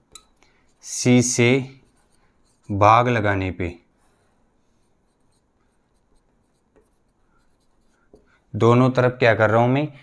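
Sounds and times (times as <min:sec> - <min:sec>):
marker pen writing on whiteboard: 0:00.6 - 0:03.2, 0:04.0 - 0:08.5.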